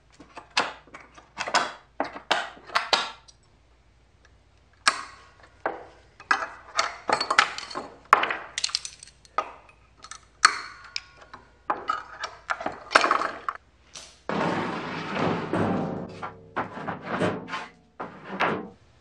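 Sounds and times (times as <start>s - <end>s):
metallic clanks of hand tools: 8.6s - 13.6s.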